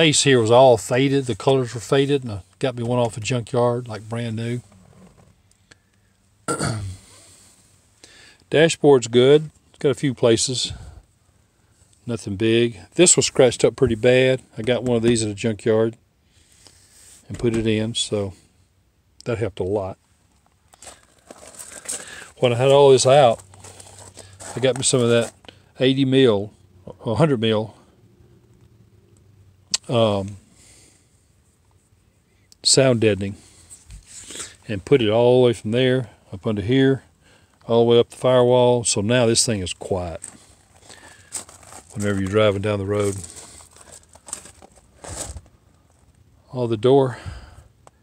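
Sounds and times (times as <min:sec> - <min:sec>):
rustling and scuffing: 0:20.5 - 0:25.5, 0:39.8 - 0:46.2.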